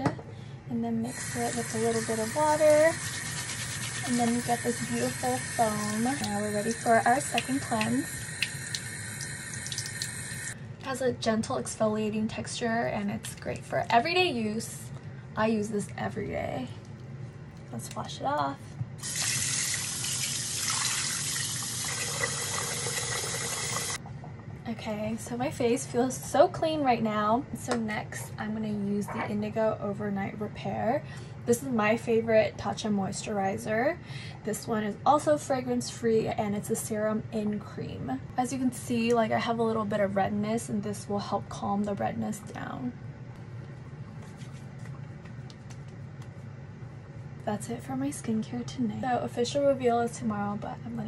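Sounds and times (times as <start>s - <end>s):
low background hum: 0.0s - 51.0s
tap water running into sink: 1.2s - 10.5s, 19.0s - 24.0s.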